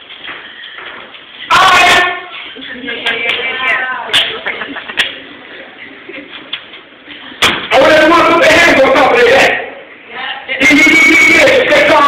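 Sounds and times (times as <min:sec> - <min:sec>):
man's amplified drawn-out vocal: 0:01.5 - 0:02.3, 0:07.7 - 0:09.8, 0:10.6 - 0:12.0.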